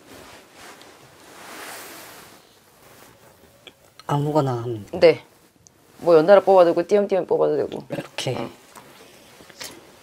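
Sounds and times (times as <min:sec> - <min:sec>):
soft rustle of hands and sleeve: 0:00.0 - 0:03.6, 0:08.3 - 0:10.0.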